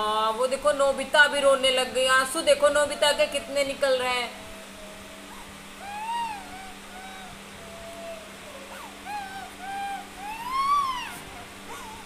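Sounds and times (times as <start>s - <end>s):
girl crying: 9.1s - 12.0s.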